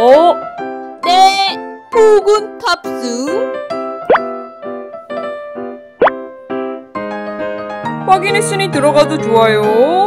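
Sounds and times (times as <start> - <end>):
children's keyboard music: 0.1 - 9.8
rising plop sound effects: 4.1 - 4.4, 6.0 - 6.2.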